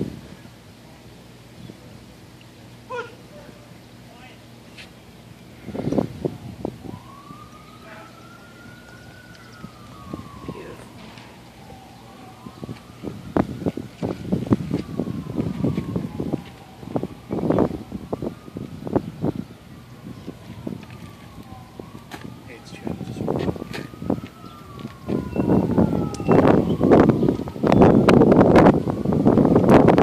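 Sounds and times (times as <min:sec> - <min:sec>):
siren wailing: 0:05.6 - 0:30.0.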